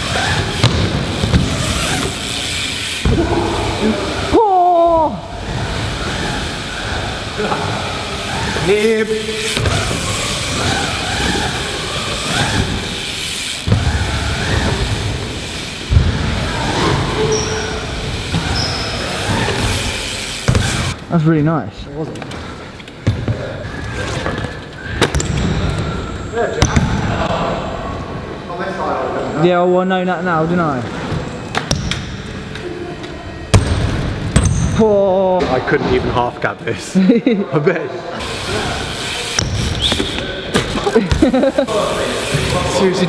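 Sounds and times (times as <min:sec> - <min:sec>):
bike tyres rolling: 0:00.0 - 0:21.1, 0:38.2 - 0:43.0
riders shouting: 0:01.6 - 0:13.1.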